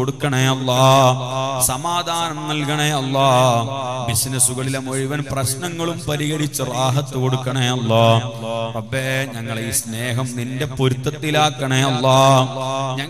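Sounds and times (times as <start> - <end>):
man chanting through loudspeakers: 0.0 - 13.0.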